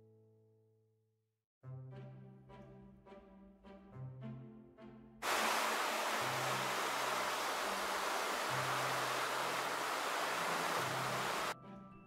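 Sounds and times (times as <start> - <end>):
soft background music: 1.6 - 5.2, 9.7 - 12.0
water rushing over a drop: 5.2 - 11.6.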